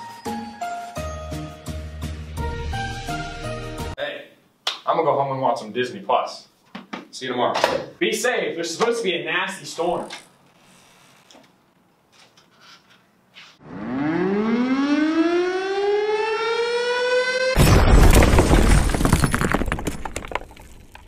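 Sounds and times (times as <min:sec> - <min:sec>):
siren winding up: 0:13.6 - 0:17.6
loud crash: 0:17.6 - 0:20.4.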